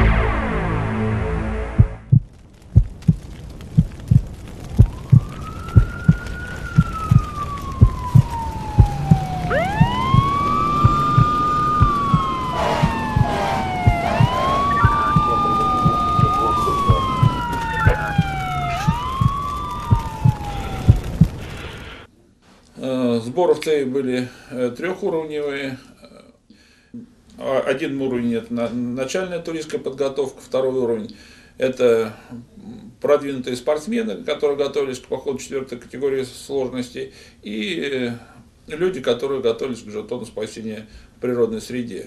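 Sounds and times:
low thumping beat: 0.0 - 3.2, 7.8 - 19.3
emergency vehicle sirens wailing: 4.4 - 22.1.

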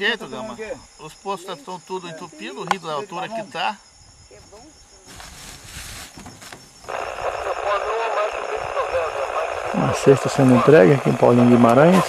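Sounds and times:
noise: 3.9 - 12.0
muffled radio-like voices: 6.9 - 12.0.

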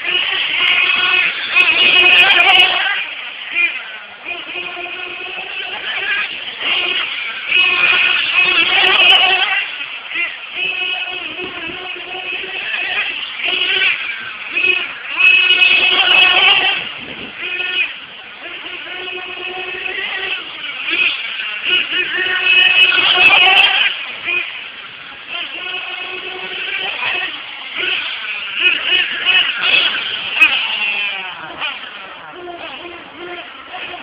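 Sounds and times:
small rc car engine revving: 0.0 - 34.0.

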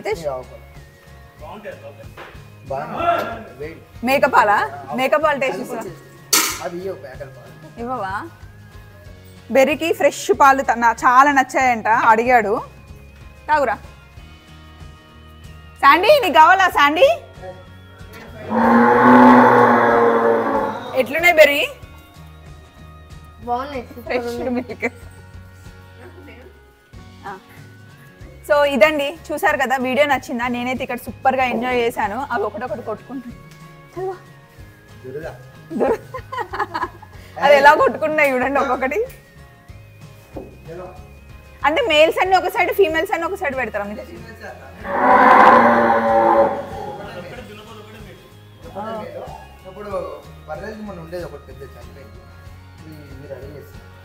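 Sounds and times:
calf mooing: 18.3 - 21.3, 44.8 - 47.2.

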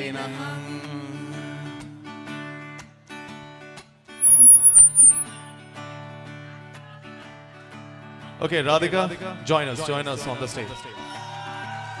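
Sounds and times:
high-pitched squeal: 4.2 - 5.5.

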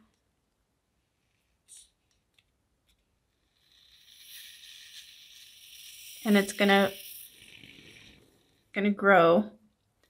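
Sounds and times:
expanding foam spray hissing: 3.9 - 8.2.

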